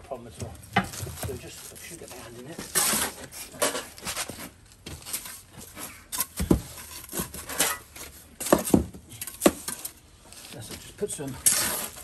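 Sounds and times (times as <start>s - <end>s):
trowel scraping metal board: 2.6s - 4.3s, 5.2s - 8.6s, 11.4s - 12.0s.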